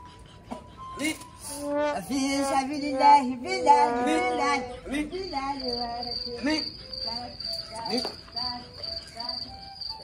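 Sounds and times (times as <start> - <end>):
crickets chirping: 1.1 - 10.0.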